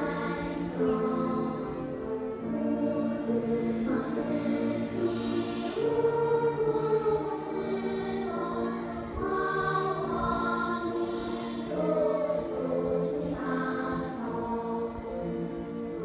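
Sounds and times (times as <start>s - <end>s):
choir singing over loudspeakers: 0.0s - 16.0s.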